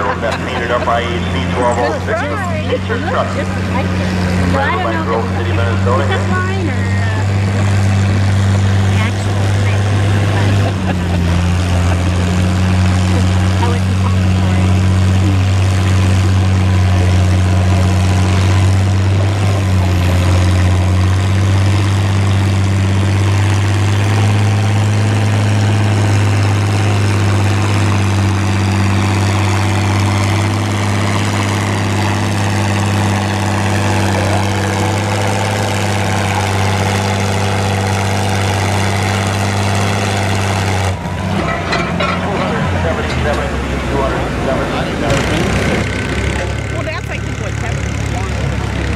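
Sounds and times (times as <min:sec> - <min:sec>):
tractor engine under heavy load: 0:00.0 - 0:48.9.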